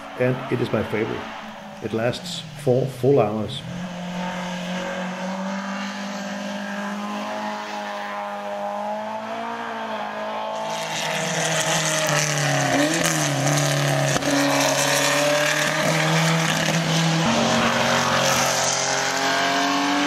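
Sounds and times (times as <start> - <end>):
racing car engines: 0.0 - 20.0.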